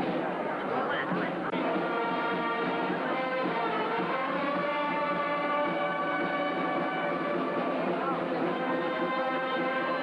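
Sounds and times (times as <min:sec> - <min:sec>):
brass band holding chords: 0:00.8 - 0:10.0.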